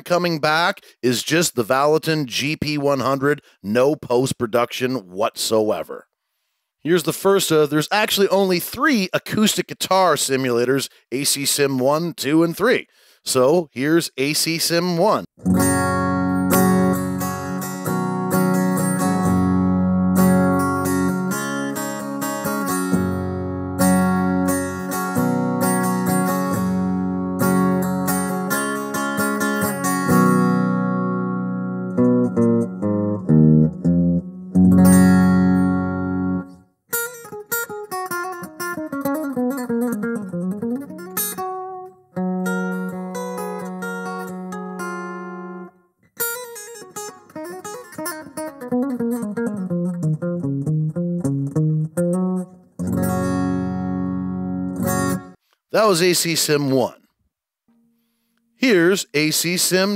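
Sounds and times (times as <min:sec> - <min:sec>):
picked single-note guitar runs: 0:15.4 - 0:55.4
guitar strumming chords: 0:15.4 - 0:56.3.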